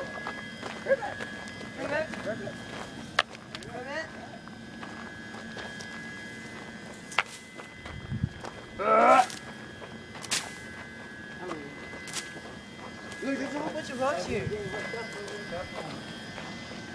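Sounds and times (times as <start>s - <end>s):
footsteps through dry grass: 0.0s - 3.8s, 4.6s - 16.7s
person calling: 8.8s - 9.5s.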